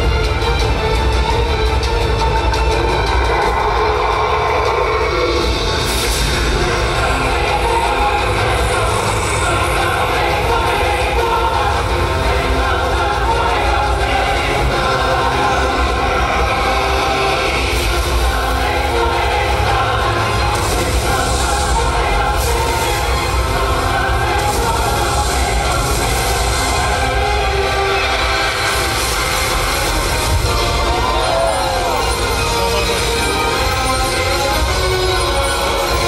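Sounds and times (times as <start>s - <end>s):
choir-like singing: 0.0s - 36.0s
dramatic music with deep bass: 0.0s - 36.0s.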